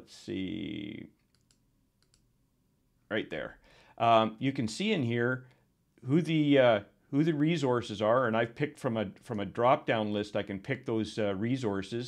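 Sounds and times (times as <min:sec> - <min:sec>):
faint computer mouse clicks: 0:01.2 - 0:02.3.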